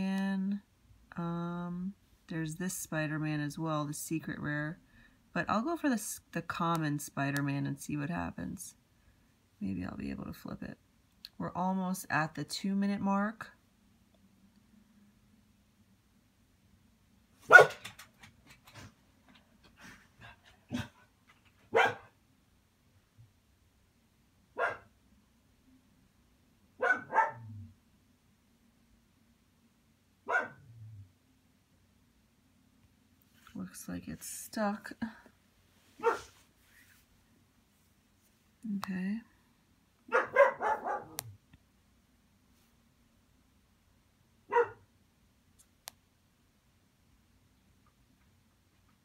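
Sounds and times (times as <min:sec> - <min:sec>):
dog barking: 0:17.5 - 0:17.9, 0:21.7 - 0:22.1, 0:24.6 - 0:24.9, 0:26.8 - 0:27.5, 0:30.3 - 0:30.6, 0:36.0 - 0:36.3, 0:40.1 - 0:41.2, 0:44.5 - 0:44.8.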